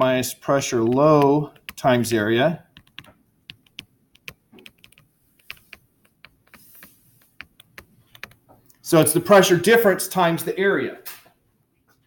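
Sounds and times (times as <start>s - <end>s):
stylus tapping on tablet screen: 0.8s - 2.0s, 2.7s - 8.7s.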